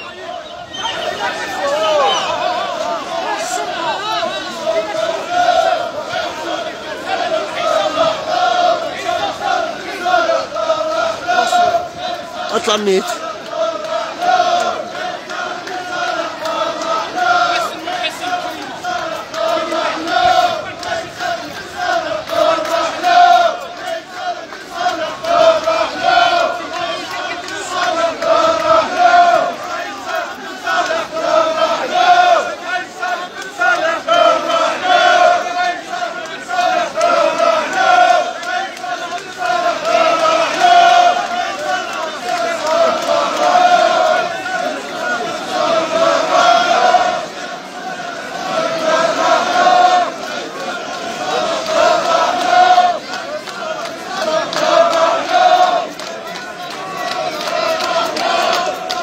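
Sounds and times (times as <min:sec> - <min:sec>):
crowd chanting slogans: 0:00.0 - 0:59.0.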